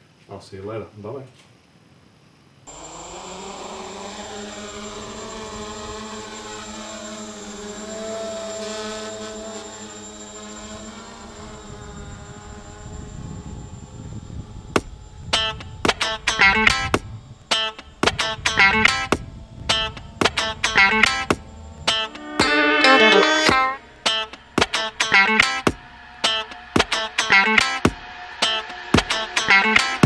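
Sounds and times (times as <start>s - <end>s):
drone motors whining: 2.7s - 30.0s
plucked guitar music: 15.4s - 30.0s.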